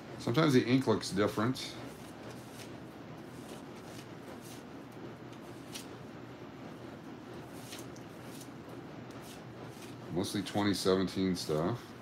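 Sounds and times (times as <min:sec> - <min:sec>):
steady low hum: 0:00.0 - 0:12.0
banknotes rustling: 0:01.9 - 0:04.7, 0:05.4 - 0:05.9, 0:09.2 - 0:10.1.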